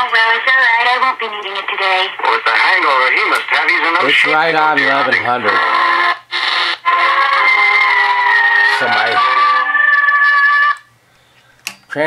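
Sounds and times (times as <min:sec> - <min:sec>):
held chords from small radio speaker: 0:00.0 - 0:10.9.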